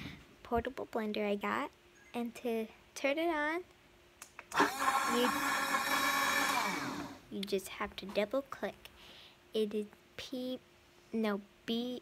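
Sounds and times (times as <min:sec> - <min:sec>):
blender motor whining: 0:04.5 - 0:07.2.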